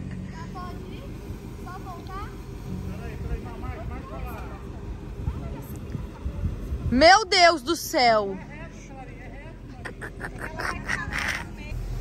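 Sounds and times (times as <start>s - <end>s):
car engine rumbling: 0.0s - 12.0s.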